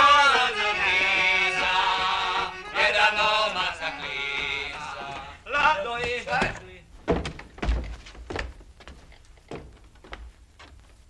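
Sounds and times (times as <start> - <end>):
men singing together: 0.0 - 5.8
sharp knocks: 6.4 - 8.5.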